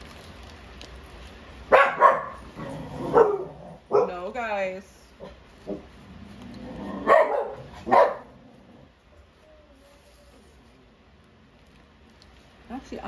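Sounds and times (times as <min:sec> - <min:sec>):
dog barking: 0:01.7 - 0:02.5, 0:03.1 - 0:04.2, 0:07.0 - 0:08.4.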